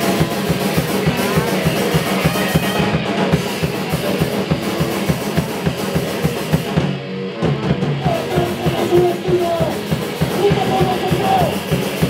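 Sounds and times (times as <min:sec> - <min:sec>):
distorted electric guitar: 0:00.0 - 0:12.0
fast drum beat: 0:00.0 - 0:12.0
punk band playing live: 0:00.0 - 0:12.0.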